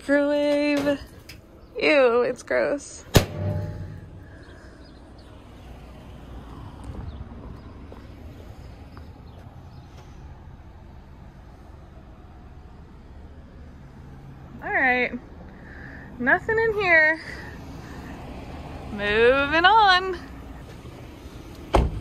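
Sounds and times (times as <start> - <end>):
outdoor background noise: 0.0 - 22.0.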